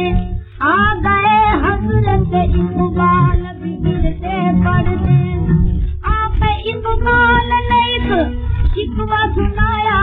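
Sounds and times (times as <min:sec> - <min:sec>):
instrumental accompaniment: 0:00.0 - 0:10.0
woman singing classical melody: 0:00.0 - 0:10.0.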